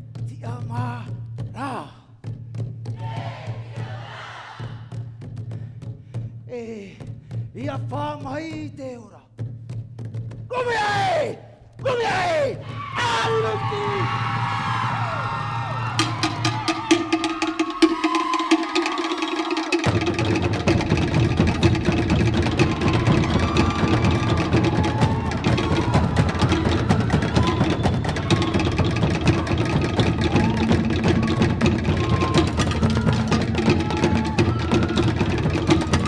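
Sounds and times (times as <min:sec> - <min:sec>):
wooden slit-drum strokes: 0:13.6 - 0:36.0.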